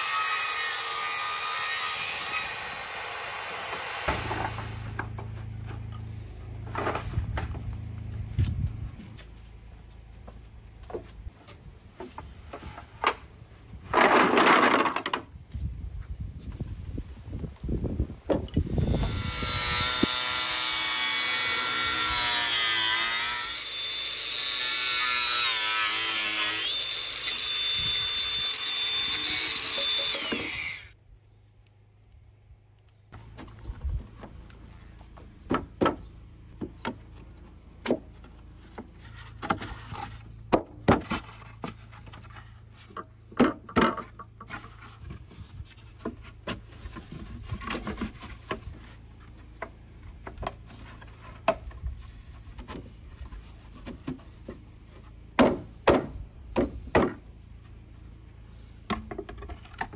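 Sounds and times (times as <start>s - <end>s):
angle grinder cutting: 18.7s - 31.0s.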